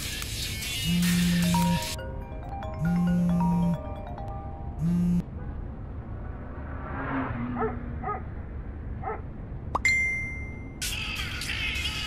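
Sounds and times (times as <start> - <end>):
phone notification chime: 1.0 - 5.2.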